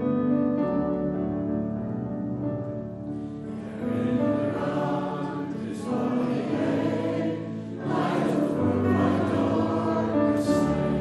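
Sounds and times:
congregation singing a hymn: 0:03.3 - 0:11.0.

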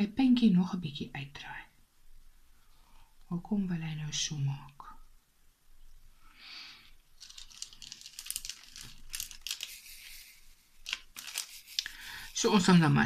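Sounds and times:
scratchy plastic rustles: 0:07.0 - 0:12.4.

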